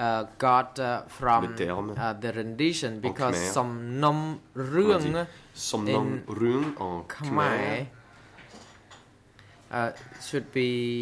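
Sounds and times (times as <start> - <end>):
faint room noise: 0.0 - 11.0
man saying uh: 3.0 - 3.8.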